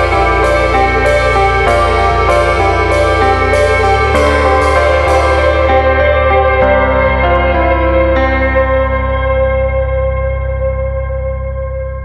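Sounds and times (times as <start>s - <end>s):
sustained instrumental chord: 0.0s - 12.0s.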